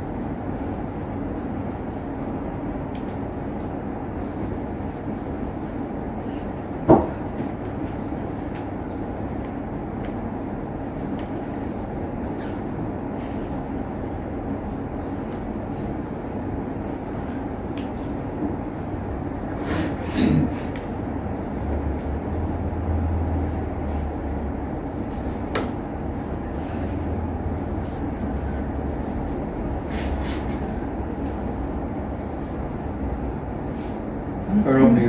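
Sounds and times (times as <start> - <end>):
low rumbling background noise: 0.0 - 35.0.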